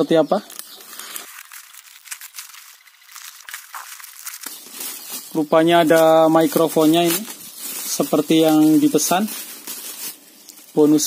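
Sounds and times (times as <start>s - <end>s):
plastic bag and bubble wrap crinkling: 0.4s - 11.0s.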